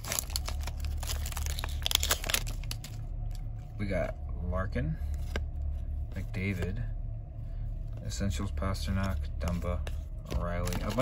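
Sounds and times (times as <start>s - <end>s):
foil wrapper crinkling: 0.0s - 3.1s.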